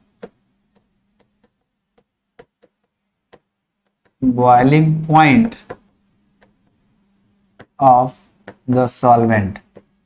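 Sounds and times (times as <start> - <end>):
chalk tapping on chalkboard: 0.0 - 4.2, 5.4 - 6.8, 7.5 - 10.0.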